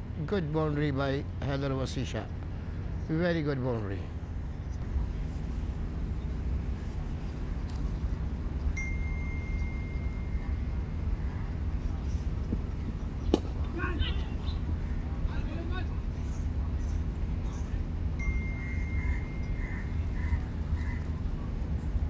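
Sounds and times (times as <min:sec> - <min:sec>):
faint distant voices: 0:00.3 - 0:22.0
thin steady tone: 0:08.3 - 0:12.4, 0:17.6 - 0:20.3
cricket bat striking ball: 0:13.3 - 0:13.8.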